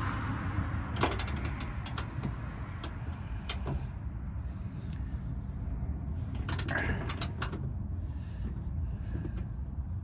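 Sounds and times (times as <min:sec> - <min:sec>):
steady low rumble: 0:00.0 - 0:10.0
ratchet wrench clicking: 0:01.0 - 0:02.2.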